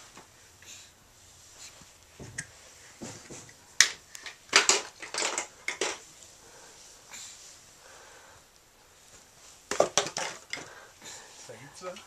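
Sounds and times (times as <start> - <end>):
plastic bottle clattering on wood: 3.0 - 6.0, 9.7 - 10.7.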